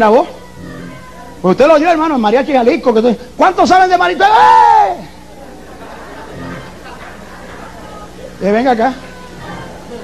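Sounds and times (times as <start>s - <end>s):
murmur of congregation voices: 4.8s - 10.0s.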